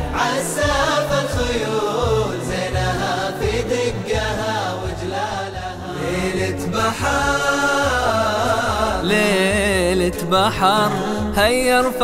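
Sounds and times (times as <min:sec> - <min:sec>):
low vocal drone: 0:00.0 - 0:12.0
voices chanting wordless melody: 0:00.0 - 0:12.0.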